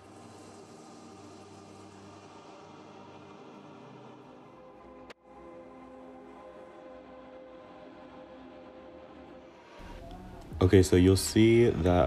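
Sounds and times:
ambient music of sustained tones: 0:00.0 - 0:12.0.

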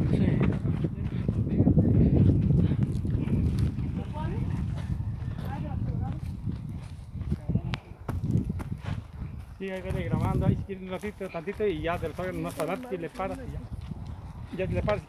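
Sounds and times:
footsteps on dirt path: 0:00.0 - 0:15.0.

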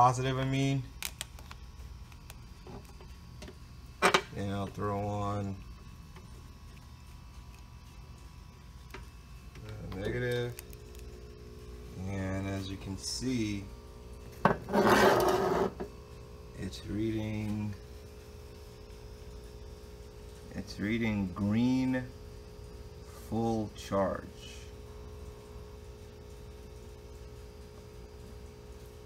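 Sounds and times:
low steady hum: 0:00.0 - 0:29.0.

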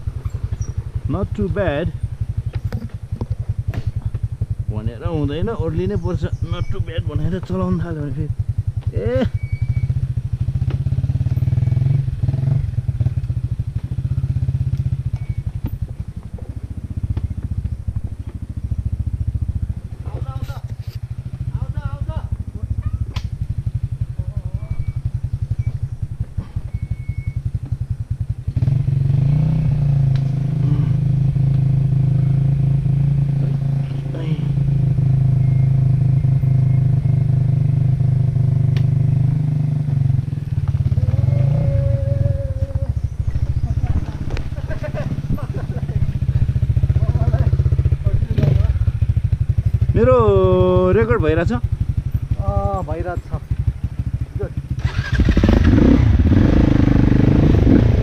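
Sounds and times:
dirt bike engine chugging: 0:00.0 - 0:58.0.

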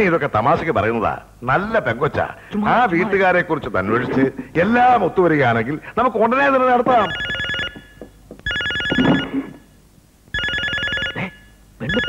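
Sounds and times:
telephone bell ringing: 0:06.9 - 0:09.7, 0:10.3 - 0:12.0.

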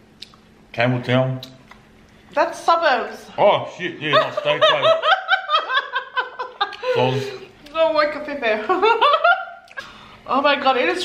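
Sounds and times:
woman laughing: 0:04.1 - 0:07.5, 0:08.4 - 0:09.6.

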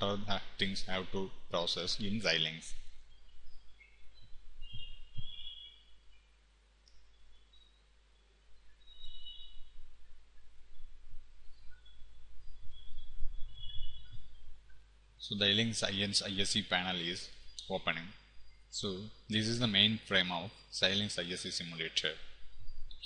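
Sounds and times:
steady low hum: 0:00.0 - 0:23.0
birds chirping: 0:00.7 - 0:23.0.

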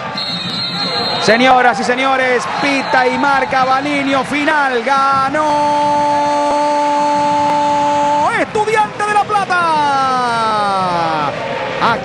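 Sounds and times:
referee whistle: 0:00.0 - 0:01.7, 0:02.5 - 0:03.6.

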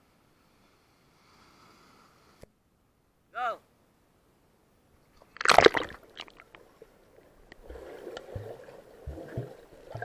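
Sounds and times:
water drips and small splashes: 0:05.2 - 0:10.0
person splashing into pool: 0:05.3 - 0:06.5.

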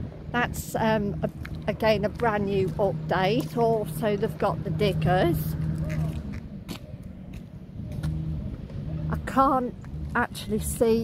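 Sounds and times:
engine humming and rumbling: 0:00.0 - 0:11.0.

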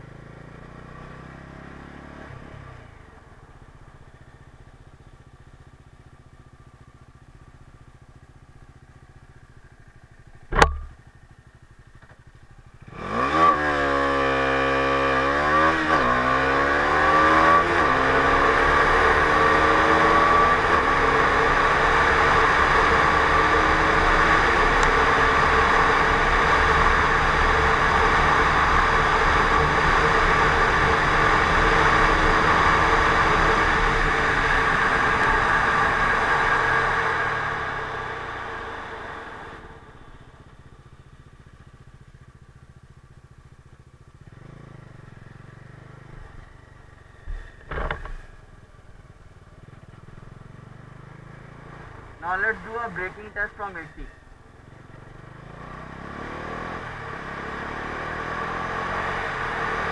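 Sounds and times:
motorcycle engine accelerating: 0:00.0 - 0:59.9
sharp click: 0:10.5 - 0:11.0.

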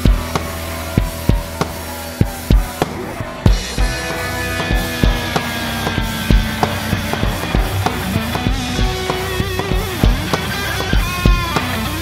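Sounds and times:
heavy metal song: 0:00.0 - 0:12.0.

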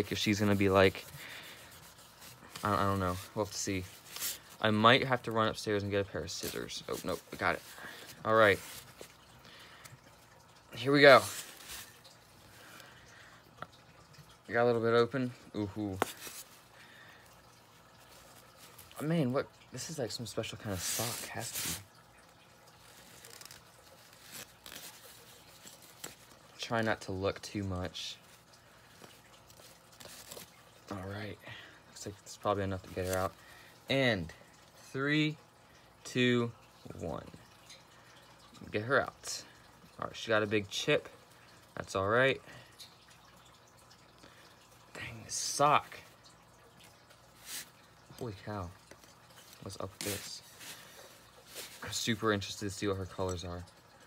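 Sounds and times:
cloth sock rustling and scraping: 0:00.0 - 0:05.6, 0:06.3 - 0:09.2, 0:11.0 - 0:12.1, 0:16.0 - 0:16.6, 0:20.6 - 0:21.9, 0:22.8 - 0:26.7, 0:29.1 - 0:30.7, 0:47.3 - 0:47.8, 0:48.9 - 0:52.3
cloth bag rustling: 0:22.8 - 0:26.3, 0:29.5 - 0:30.6, 0:48.9 - 0:52.0.

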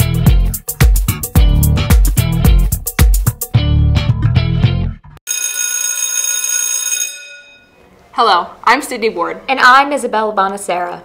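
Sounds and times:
school bell ringing: 0:05.3 - 0:07.8.

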